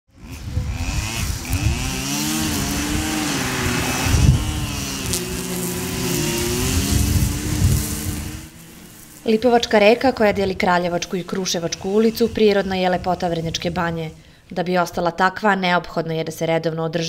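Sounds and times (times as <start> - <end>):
string trimmer engines cutting grass: 0.1 - 14.5.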